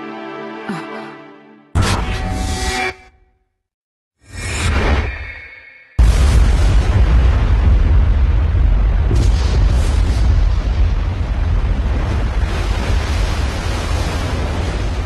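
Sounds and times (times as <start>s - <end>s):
loud blast with deep rumble: 6.0s - 15.0s.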